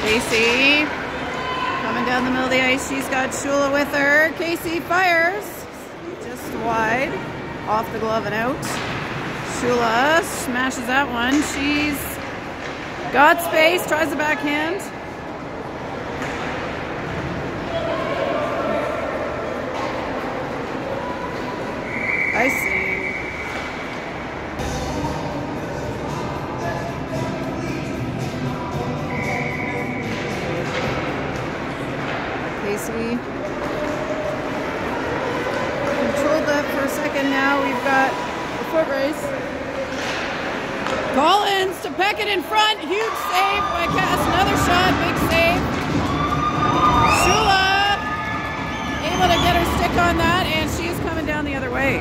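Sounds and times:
spectators talking: 0.0s - 52.0s
hockey sticks and puck knocks: 8.6s - 9.6s, 16.1s - 17.4s, 30.0s - 32.6s, 39.8s - 41.2s, 43.8s - 46.9s.

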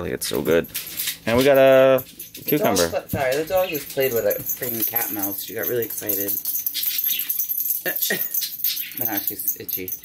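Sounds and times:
collar tags jingling: 0.2s - 10.0s.

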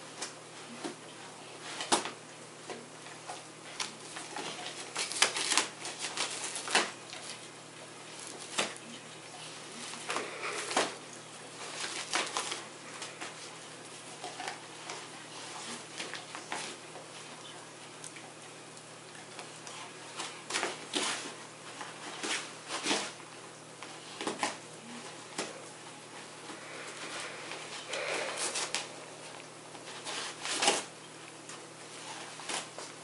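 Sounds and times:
dog tearing paper envelope: 3.8s - 7.4s, 9.8s - 17.3s, 19.4s - 23.2s, 29.8s - 30.9s.

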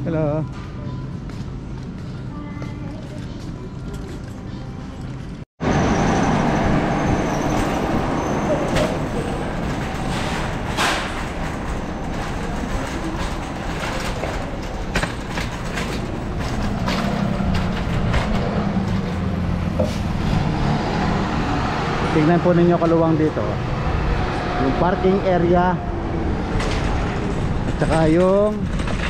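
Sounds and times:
cart clanks: 6.3s - 20.7s, 26.4s - 29.0s
shopping cart rattling: 8.7s - 19.3s, 27.2s - 29.0s.

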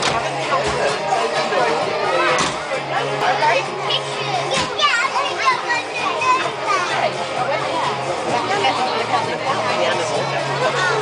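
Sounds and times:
children chattering and calling out: 0.0s - 11.0s
music playing: 0.0s - 11.0s.

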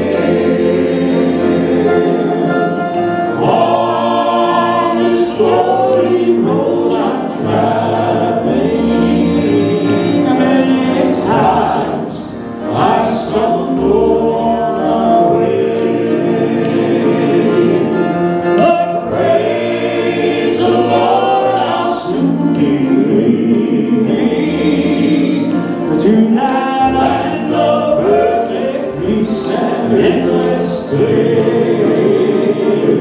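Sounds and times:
male quartet singing in harmony: 0.0s - 33.0s.

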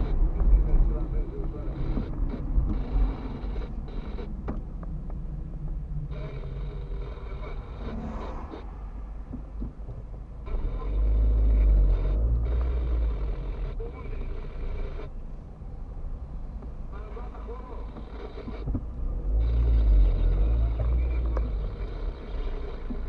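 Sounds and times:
car engine and tyre rumble: 0.0s - 23.0s.

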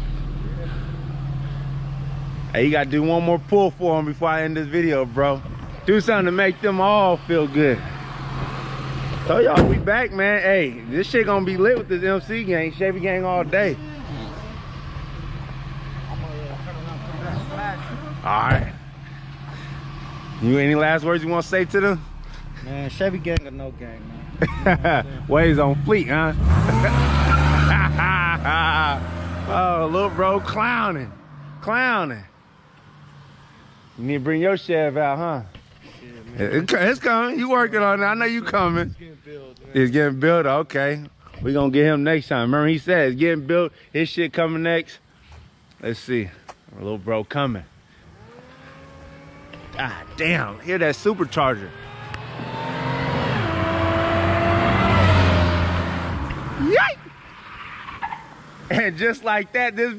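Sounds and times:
supercharger whine: 0.0s - 35.2s, 46.1s - 59.4s
car engine accelerating: 0.0s - 39.2s, 47.3s - 59.8s.

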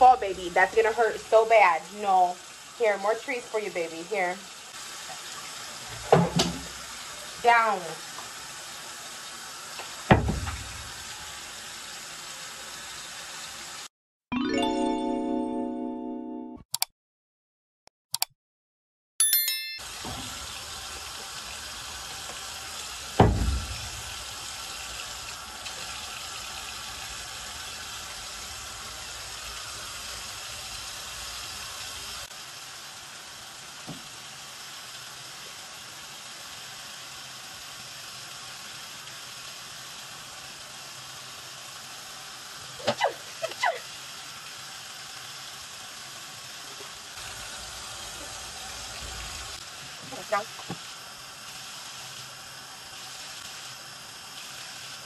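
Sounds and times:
faucet water running into sink: 0.0s - 13.9s, 19.8s - 55.0s
loud thump: 10.1s - 10.7s, 23.2s - 23.9s
short ding: 19.2s - 19.9s.

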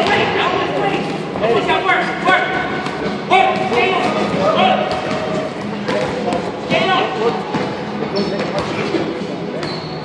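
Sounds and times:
indistinct echoing voices: 0.0s - 10.0s
boxers sparring knocks and thuds: 2.6s - 8.9s.

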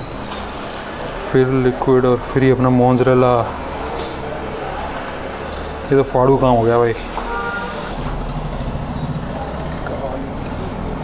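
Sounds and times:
faint distant voices: 1.0s - 11.0s.

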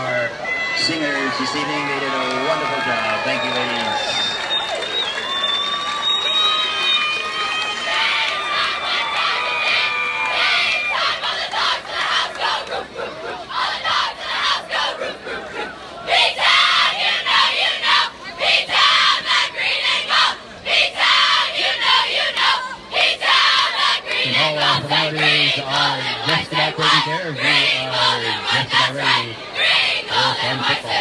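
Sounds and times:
cheerleaders shouting chant: 6.7s - 31.0s.

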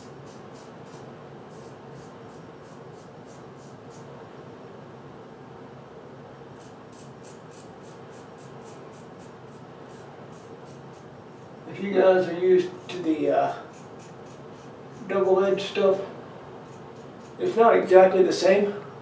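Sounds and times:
razor scraping stubble: 0.0s - 4.1s, 6.6s - 16.0s, 16.6s - 17.6s.

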